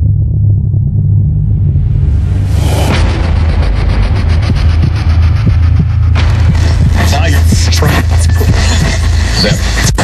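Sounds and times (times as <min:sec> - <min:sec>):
deep engine-like rumble with flutter: 0:00.0 - 0:09.2.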